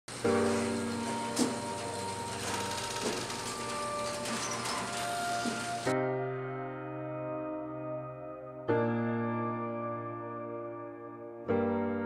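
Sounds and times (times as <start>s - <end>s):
metal roller shutter rattling: 0.1s - 5.9s
background music: 0.1s - 12.0s.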